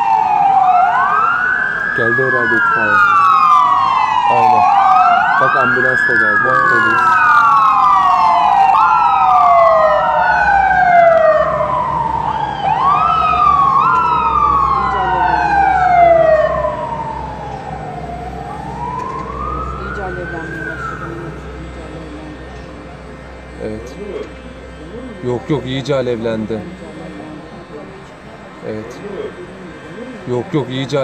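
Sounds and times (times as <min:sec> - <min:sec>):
emergency vehicle sirens wailing: 0:00.0 - 0:31.0.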